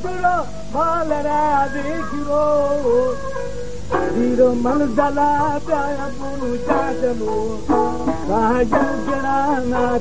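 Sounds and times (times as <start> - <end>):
plucked string folk music: 3.5 - 10.0.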